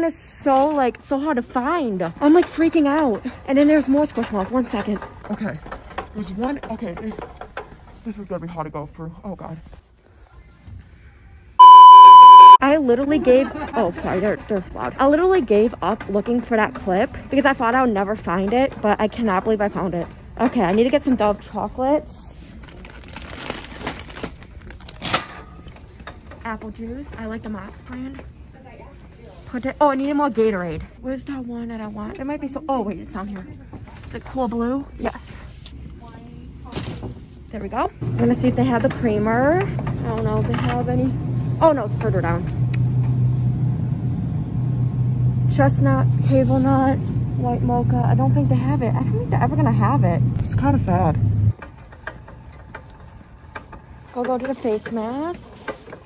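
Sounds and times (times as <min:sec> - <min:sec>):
low steady hum: 0:11.6 - 0:12.8
plastic wrapping crinkling: 0:22.6 - 0:25.0
woman speaking: 0:45.5 - 0:51.2.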